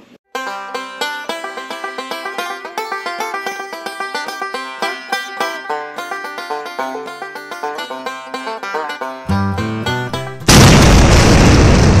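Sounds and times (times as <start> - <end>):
banjo music: 0.3 - 10.5
loud explosion: 10.5 - 12.0.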